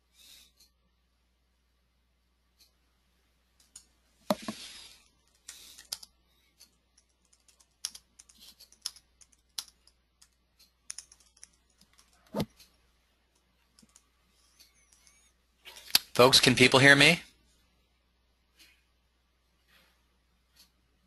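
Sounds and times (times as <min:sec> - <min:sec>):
keyboard typing clicks: 0:07.0 - 0:12.5.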